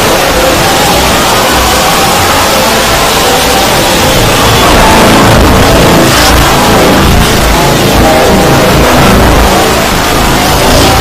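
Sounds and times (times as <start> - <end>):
distorted dense wall of noise: 0.0 - 11.0.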